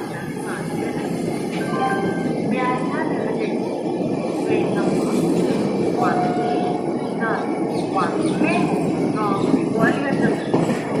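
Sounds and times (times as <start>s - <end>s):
train wheels rumbling on track: 0.0s - 11.0s.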